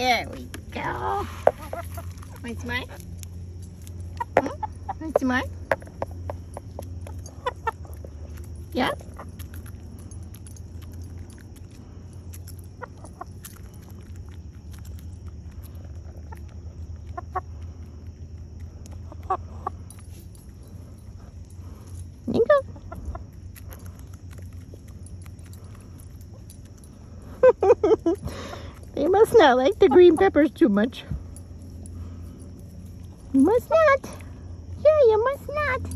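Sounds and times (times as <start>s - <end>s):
steady low hum: 0.0s - 35.9s
hens clucking: 0.8s - 8.4s, 12.3s - 13.5s, 15.6s - 19.9s, 22.3s - 23.7s, 28.2s - 30.6s.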